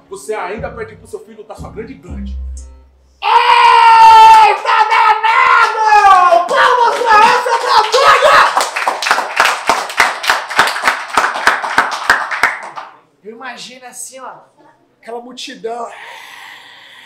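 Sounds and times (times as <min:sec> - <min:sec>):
people shouting: 0:03.2 - 0:08.6
people clapping: 0:04.3 - 0:13.0.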